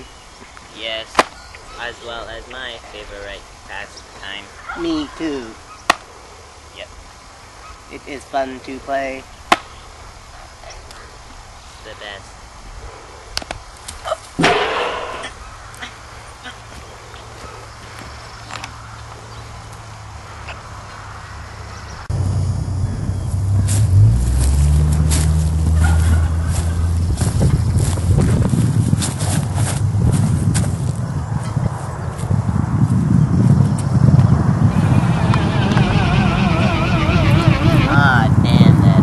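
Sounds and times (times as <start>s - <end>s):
wavering warbling sound: 14.4s - 15.4s
wind buffeting microphone: 21.9s - 39.0s.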